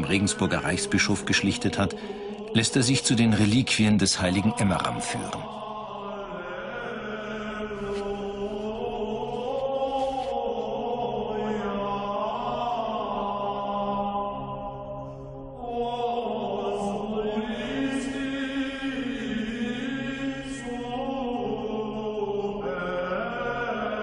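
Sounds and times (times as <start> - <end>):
low voices chanting: 0.0 - 24.0.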